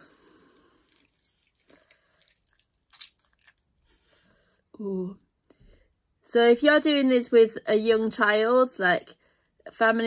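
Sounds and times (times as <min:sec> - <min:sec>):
wet clay squelching: 0:00.0 - 0:04.2.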